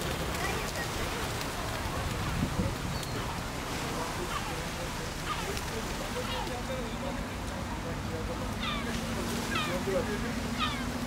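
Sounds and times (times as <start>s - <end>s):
distant voices murmuring: 0.0s - 11.0s
low city rumble: 0.0s - 11.0s.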